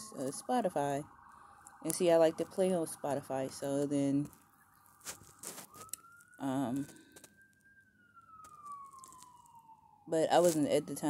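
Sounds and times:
faint siren wailing: 0:00.0 - 0:11.0.

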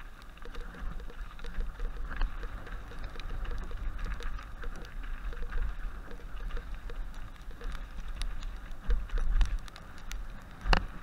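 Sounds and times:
bike clicks and rattles: 0:00.0 - 0:11.0
wind rumble on microphone: 0:00.0 - 0:11.0.

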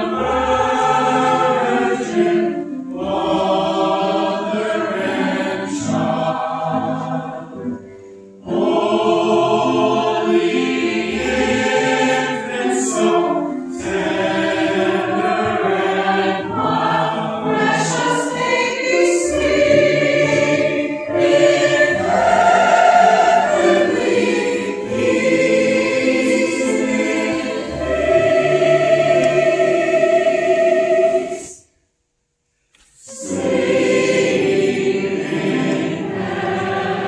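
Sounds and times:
mixed choir singing: 0:00.0 - 0:31.7, 0:33.0 - 0:37.0.

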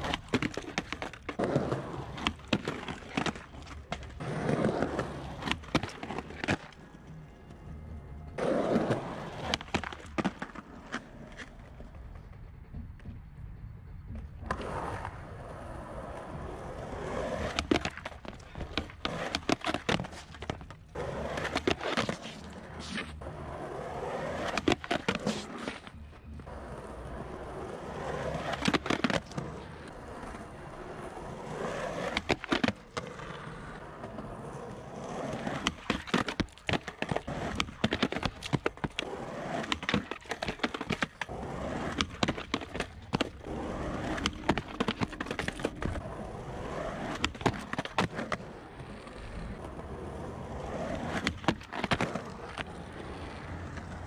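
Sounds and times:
skateboard popping and landing clacks: 0:00.0 - 0:06.9, 0:08.4 - 0:13.3, 0:14.1 - 0:54.0
skateboard trucks grinding concrete: 0:00.0 - 0:07.2, 0:08.2 - 0:12.4, 0:14.4 - 0:54.0
skateboard wheels rolling on concrete: 0:00.0 - 0:54.0.

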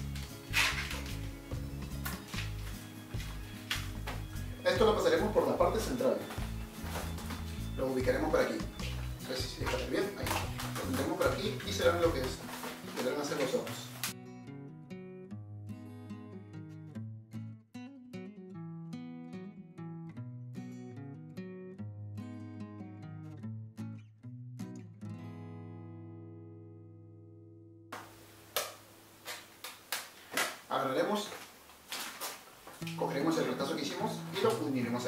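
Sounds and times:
acoustic guitar music: 0:00.0 - 0:29.6, 0:32.8 - 0:35.0
balloons squeaking while twisted: 0:00.2 - 0:01.4.

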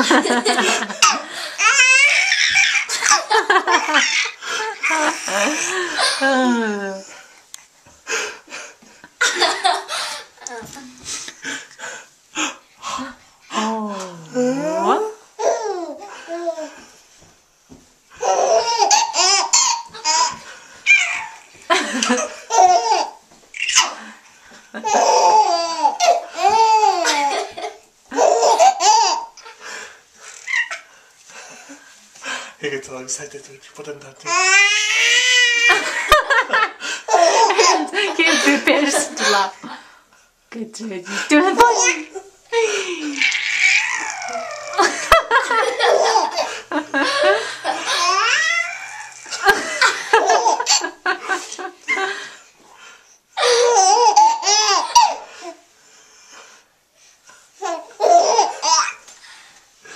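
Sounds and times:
people laughing along: 0:00.0 - 0:01.4, 0:02.9 - 0:06.8, 0:21.6 - 0:22.4, 0:35.7 - 0:39.5, 0:44.7 - 0:48.0, 0:49.2 - 0:52.3
baby laughing: 0:00.3 - 0:06.2, 0:15.4 - 0:16.8, 0:18.2 - 0:24.0, 0:24.8 - 0:29.6, 0:30.4 - 0:30.9, 0:37.1 - 0:39.5, 0:41.6 - 0:51.0, 0:53.4 - 0:55.5, 0:57.6 - 0:59.0.

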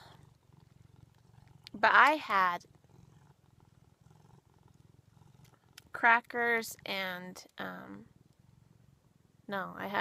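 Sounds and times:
cat purring: 0:00.0 - 0:10.0.

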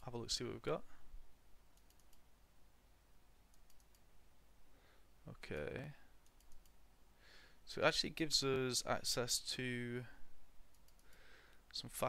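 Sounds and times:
computer mouse clicks: 0:01.8 - 0:02.3, 0:03.5 - 0:04.1, 0:05.5 - 0:06.8, 0:10.7 - 0:11.2.

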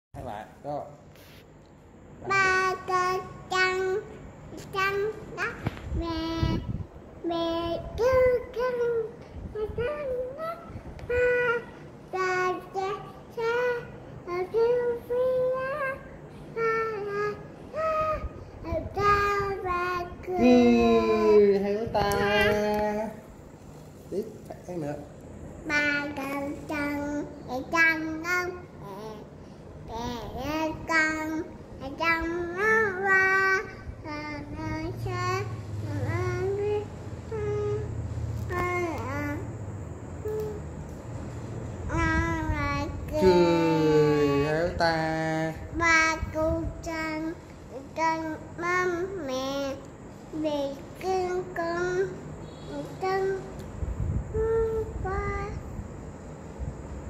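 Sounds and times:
child singing in a high voice: 0:02.2 - 0:22.7, 0:25.6 - 0:39.6, 0:40.2 - 0:40.6, 0:41.8 - 0:44.7, 0:45.5 - 0:55.8.

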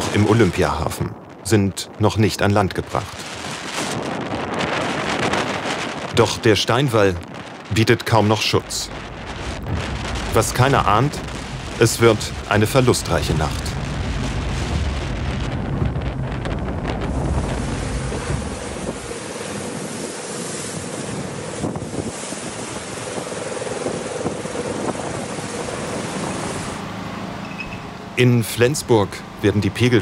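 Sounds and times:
choppy water: 0:00.0 - 0:30.0
wind buffeting microphone: 0:00.0 - 0:30.0
rushing flood water: 0:02.8 - 0:15.9, 0:17.1 - 0:30.0.

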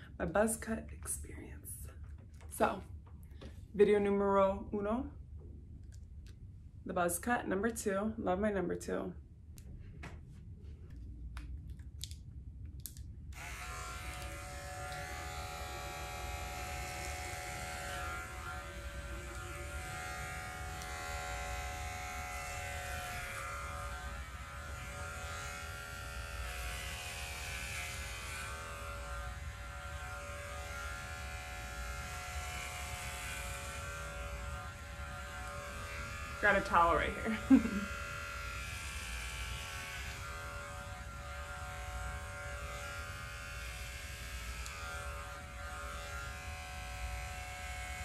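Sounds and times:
electric hair clippers cutting hair: 0:13.3 - 0:48.0.

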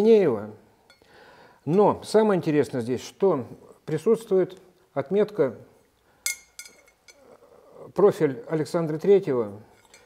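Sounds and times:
faint clicks of bell handling: 0:06.3 - 0:07.2, 0:09.8 - 0:10.0.

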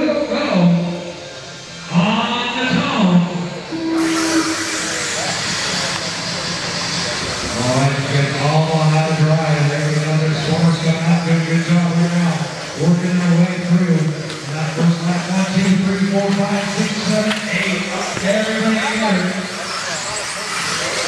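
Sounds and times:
indistinct voices: 0:00.0 - 0:21.0
short steady tone: 0:03.7 - 0:05.0
rc car motors and tyres hissing: 0:03.8 - 0:07.8, 0:18.5 - 0:21.0.

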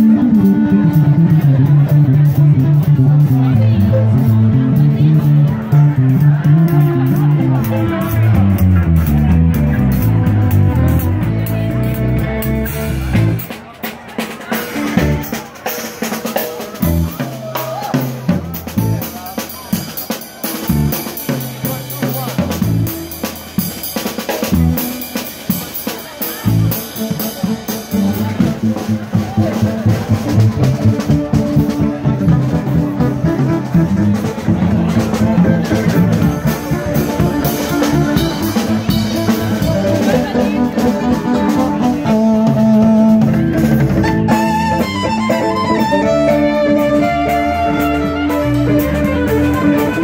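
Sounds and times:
low bass notes: 0:00.0 - 0:13.5, 0:14.8 - 0:15.3, 0:18.2 - 0:19.2, 0:20.6 - 0:23.8, 0:24.4 - 0:25.5, 0:26.4 - 0:50.0
drum kit playing: 0:00.0 - 0:50.0
live band music: 0:00.0 - 0:50.0.

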